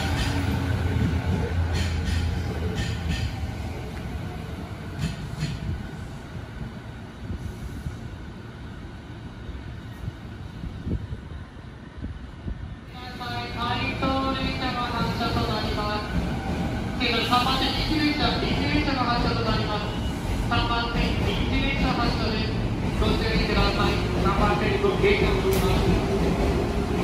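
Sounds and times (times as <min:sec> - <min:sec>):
rail clicks: 0:00.0 - 0:04.2, 0:04.8 - 0:05.8, 0:20.6 - 0:27.0
electric train rumbling: 0:00.0 - 0:27.0
station announcement: 0:12.9 - 0:26.6.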